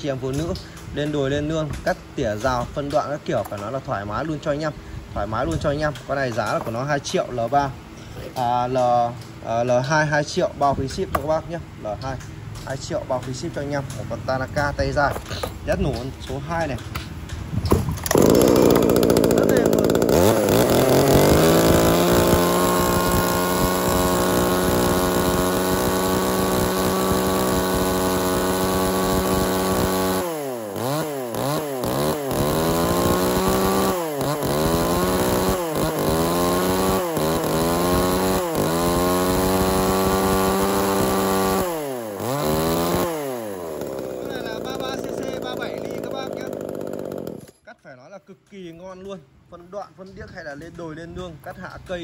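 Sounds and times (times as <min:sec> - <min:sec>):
chainsaw pull-start: 0:00.1 - 0:09.4, 0:15.2 - 0:47.7
chainsaw engine revving: 0:18.0 - 0:47.6.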